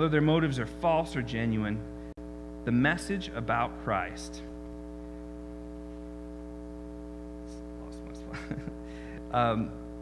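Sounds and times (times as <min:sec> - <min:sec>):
electrical mains hum: 0:00.0 - 0:10.0
person starting to laugh: 0:08.3 - 0:08.8.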